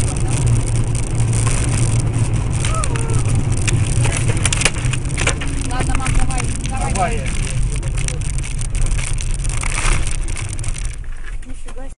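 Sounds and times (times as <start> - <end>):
moving car rumble: 0.0 - 12.0.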